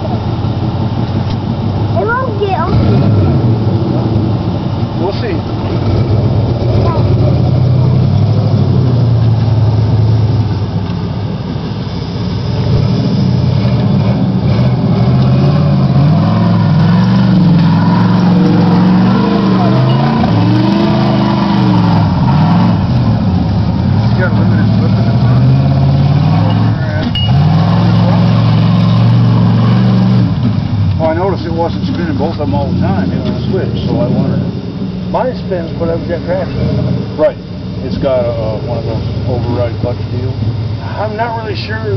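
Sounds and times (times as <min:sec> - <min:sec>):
tires spinning: 0:00.0 - 0:41.9
truck engine revving: 0:00.0 - 0:41.9.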